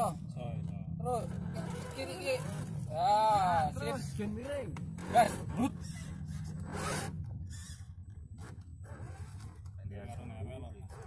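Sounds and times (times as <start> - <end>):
toy truck electric motor running: 5.0 - 7.8
short scrapes: 5.0 - 9.7.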